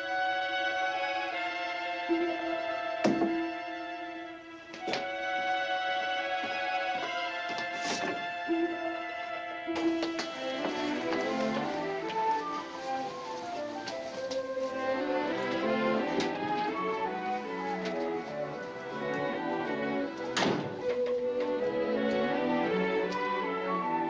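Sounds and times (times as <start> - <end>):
orchestral film score: 0.0 - 24.0.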